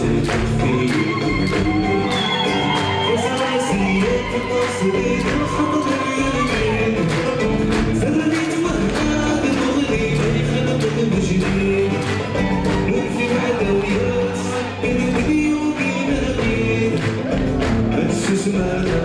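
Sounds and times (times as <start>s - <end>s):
bass lute: 0.0s - 19.0s
drums beating: 0.0s - 19.0s
person singing: 0.0s - 19.0s.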